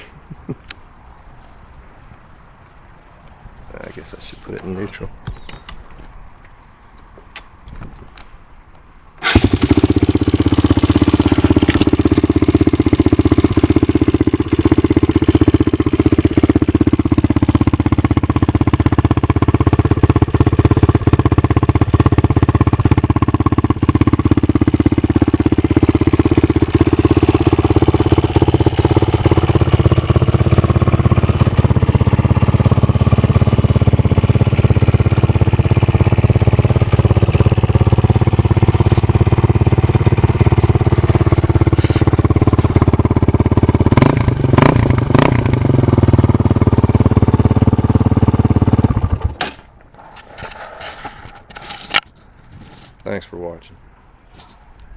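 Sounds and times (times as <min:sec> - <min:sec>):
quad engine starting and idling: 0:09.2 - 0:51.3.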